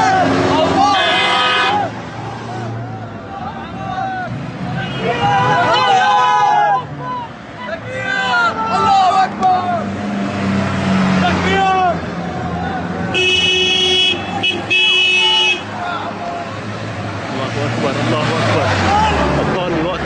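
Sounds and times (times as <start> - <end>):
men's voices: 0.0 - 13.2, 14.4 - 20.0
car engine and road noise: 0.0 - 20.0
vehicle horn blasts: 13.1 - 15.8.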